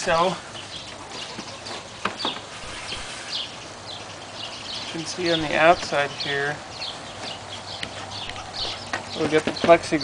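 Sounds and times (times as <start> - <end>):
birds chirping: 0.0 - 10.0
knocks on wooden frame: 8.9 - 9.9.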